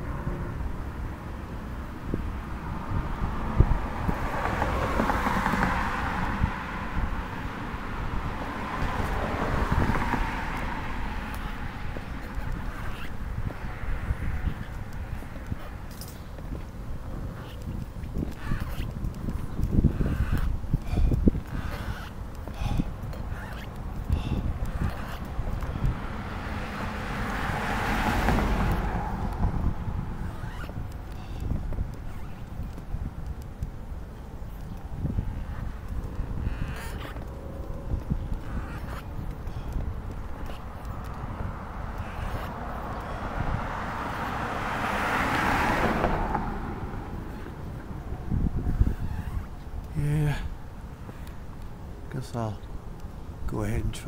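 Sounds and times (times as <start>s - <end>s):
cars passing: 0.0s - 54.0s
wind on microphone: 0.0s - 54.0s.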